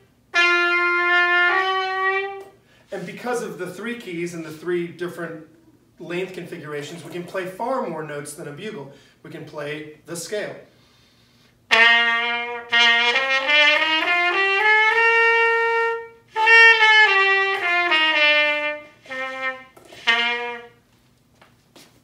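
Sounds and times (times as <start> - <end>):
cornet playing a scale: 0.0 - 3.4, 11.7 - 20.8.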